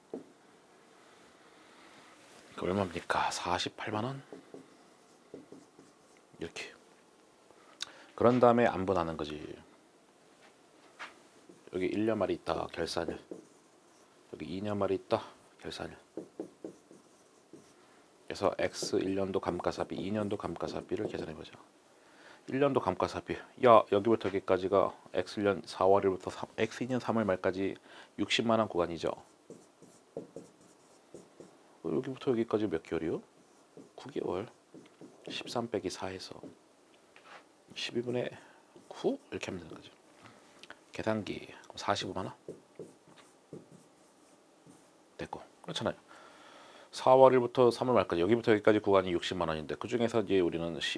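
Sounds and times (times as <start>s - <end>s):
man talking: 2.5s - 4.3s, 6.4s - 6.8s, 8.2s - 9.7s, 11.7s - 13.3s, 14.3s - 16.0s, 18.3s - 21.6s, 31.8s - 33.3s, 34.0s - 34.6s, 35.3s - 36.5s, 37.7s - 40.0s, 41.0s - 42.4s
marker writing on board: 4.3s - 6.2s, 12.8s - 14.1s, 16.1s - 17.8s, 18.6s - 21.3s, 29.2s - 31.6s, 33.4s - 35.8s, 38.8s - 39.4s, 42.4s - 44.9s.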